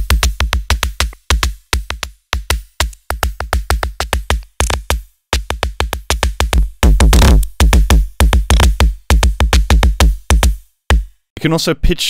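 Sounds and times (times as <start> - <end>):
electronic drum machine hits: 0.0 - 11.1.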